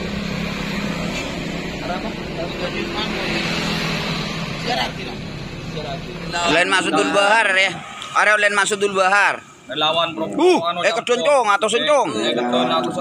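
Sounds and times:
motorcycle passing: 0.0s - 10.5s
cars passing: 0.0s - 13.0s.

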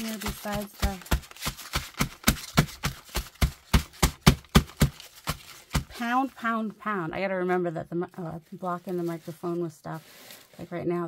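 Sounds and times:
paper wad pounding on paper stack: 0.0s - 6.1s.

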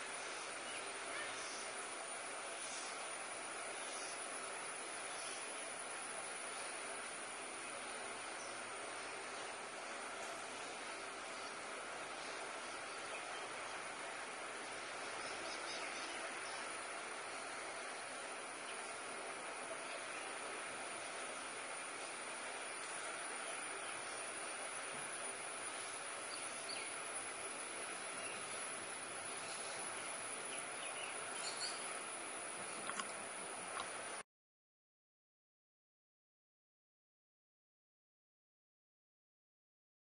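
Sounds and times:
insects droning: 0.0s - 34.2s.

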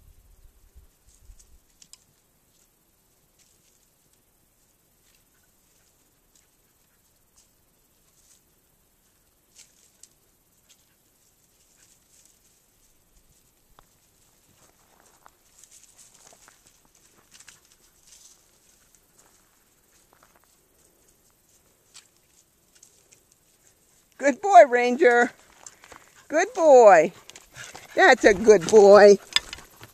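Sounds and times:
rustling in dry brush: 4.7s - 24.2s, 25.1s - 29.9s.

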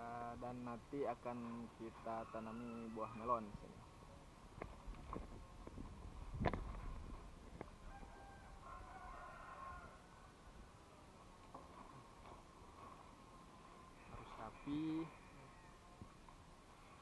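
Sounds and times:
faint rooster crowing: 1.9s - 3.5s, 7.8s - 10.8s, 13.9s - 16.2s.

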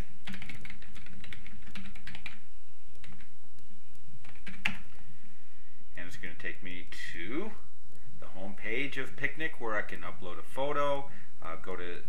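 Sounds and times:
keyboard clicks: 0.2s - 2.4s, 3.0s - 3.3s, 4.2s - 5.0s
typing on computer keyboard: 0.2s - 2.4s, 3.0s - 3.3s, 4.2s - 4.9s.

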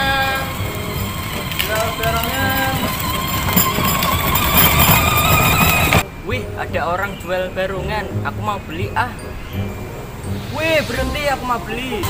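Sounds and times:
small vehicle motor running: 0.0s - 6.0s.

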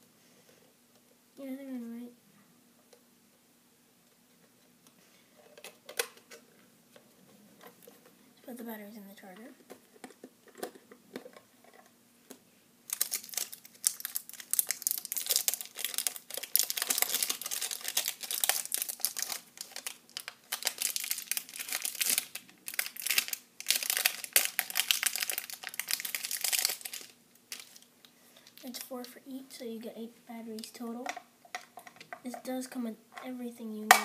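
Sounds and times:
crinkly packaging crackling: 12.9s - 29.2s.

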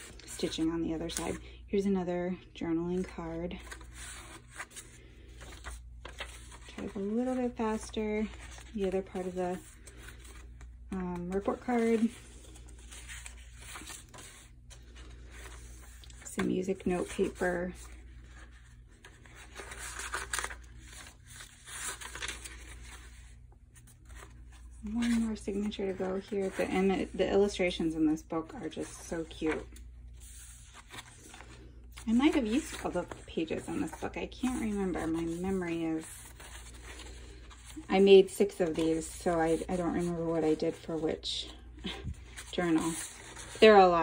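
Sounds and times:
paper pages rustling: 3.0s - 44.0s.

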